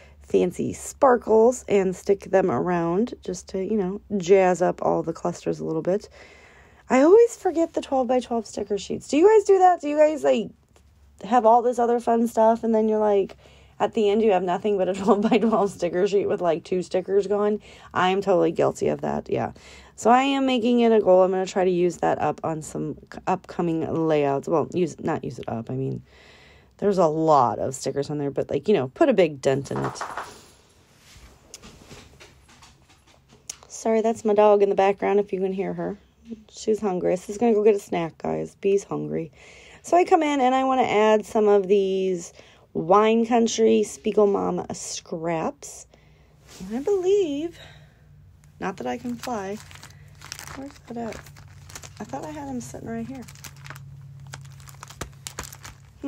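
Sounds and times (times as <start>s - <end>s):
steady low hum: 41.7s - 56.0s
faint handling sounds: 46.4s - 47.5s, 48.4s - 56.0s
paper rustling: 48.8s - 56.0s.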